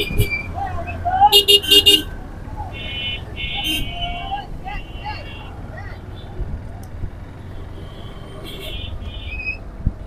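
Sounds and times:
traffic engines rumbling: 0.0s - 10.0s
vehicle horn honking: 1.3s - 2.1s, 2.7s - 4.2s, 7.8s - 9.3s.

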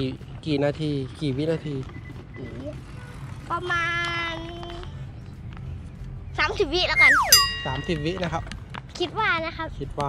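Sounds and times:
boy holding a long tone: 7.0s - 8.1s.

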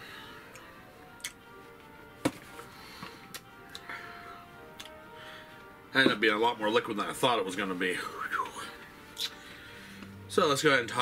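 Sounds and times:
soft music of held tones: 0.0s - 11.0s.

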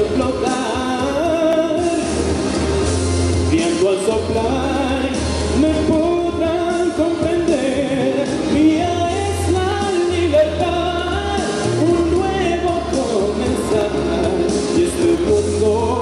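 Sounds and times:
man singing into a microphone: 0.0s - 2.3s, 3.5s - 16.0s
instrumental accompaniment with bass: 0.0s - 16.0s.

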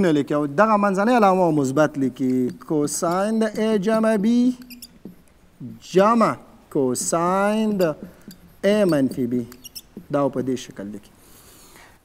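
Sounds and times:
marker squeaking on whiteboard: 1.2s - 11.6s.

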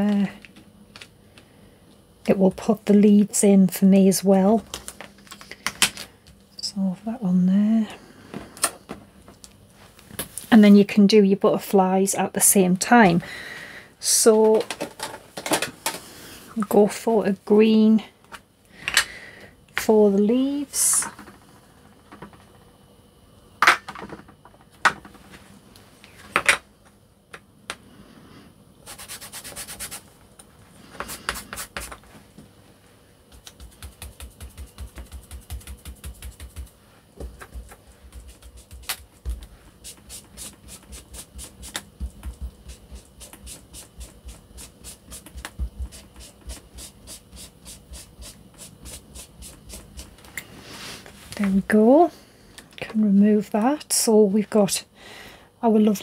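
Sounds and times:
ink tool scrubbing on paper: 28.8s - 30.0s, 33.4s - 36.8s, 37.6s - 39.1s, 39.8s - 50.2s.

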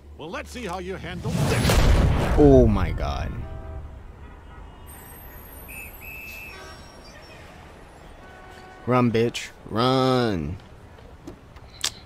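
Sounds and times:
low rumble of city traffic: 0.0s - 12.0s
whistle blasts: 4.9s - 7.5s.

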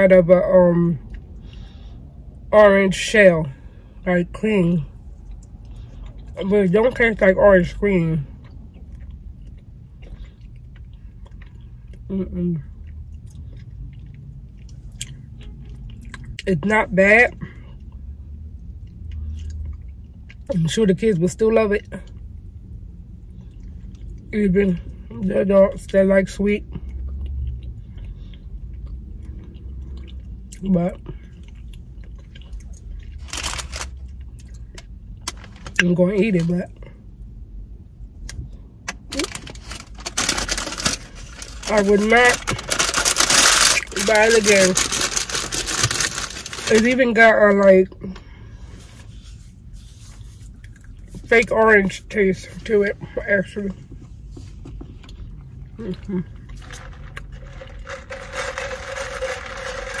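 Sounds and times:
low steady hum: 0.0s - 60.0s.

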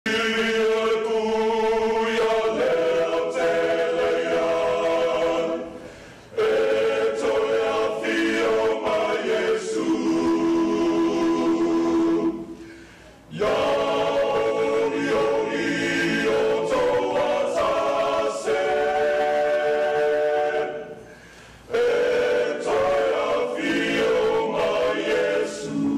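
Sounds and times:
choir singing a hymn: 0.1s - 25.9s.

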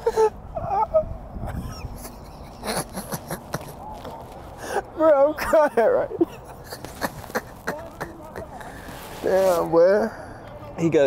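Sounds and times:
man wheezing laughter: 0.0s - 3.8s
low outdoor rumble: 0.0s - 11.0s.

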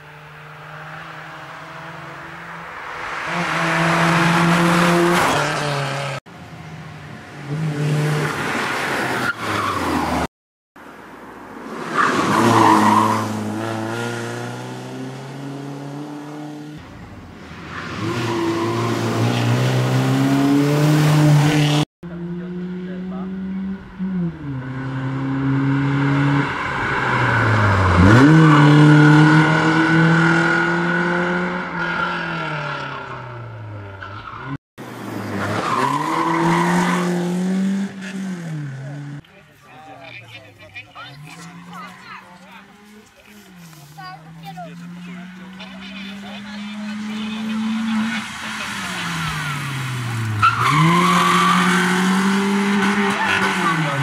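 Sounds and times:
rally car engine revving: 0.0s - 6.2s, 12.2s - 39.2s, 40.8s - 54.0s.

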